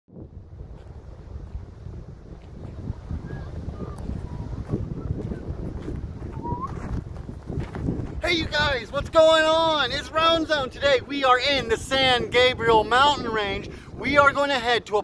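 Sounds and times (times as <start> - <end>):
wind buffeting microphone: 0.1 - 15.0.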